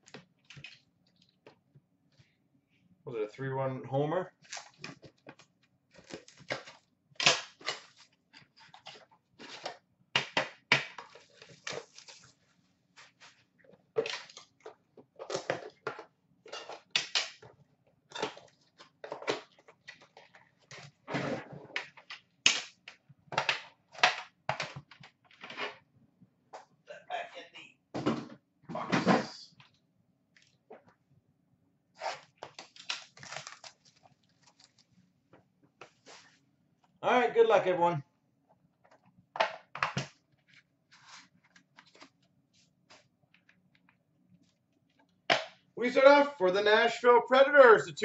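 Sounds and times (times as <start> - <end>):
scrape or rustle of tins: 7.5 - 9.8, 11.0 - 16.9, 35.8 - 36.4, 40.4 - 43.1
plastic shrink wrap crinkling: 32.3 - 35.0.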